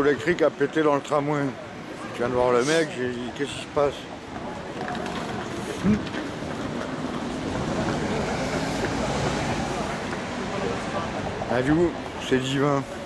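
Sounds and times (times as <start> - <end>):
vehicle passing on city street: 0.0 - 13.0.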